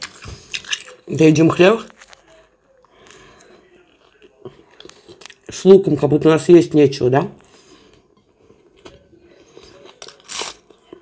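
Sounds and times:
person chewing bread: 0.0 - 1.1, 1.8 - 5.5, 7.5 - 11.0.

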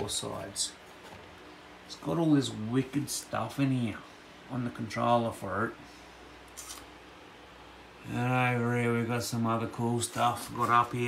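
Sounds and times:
soft high-pitched handling rustle: 10.0 - 11.0.

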